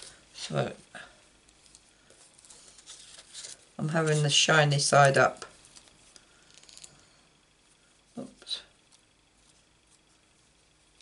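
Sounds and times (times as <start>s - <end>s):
paper rustling: 2.2s - 4.2s
soft paper scrapes: 2.2s - 4.2s.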